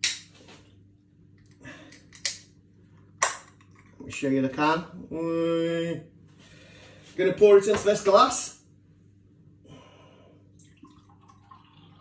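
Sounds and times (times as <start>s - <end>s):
beer pouring into glass: 10.6s - 12.0s.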